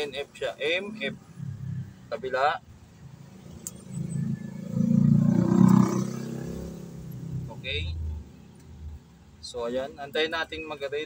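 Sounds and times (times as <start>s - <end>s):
vehicle engine passing by: 3.1s - 8.6s.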